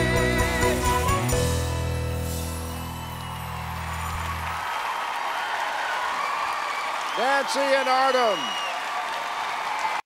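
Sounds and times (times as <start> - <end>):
audience applause and cheering: 1.2 - 10.0.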